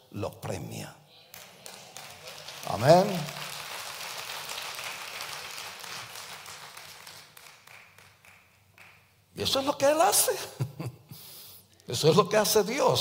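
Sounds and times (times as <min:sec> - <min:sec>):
congregation applauding: 0:01.3 - 0:09.1.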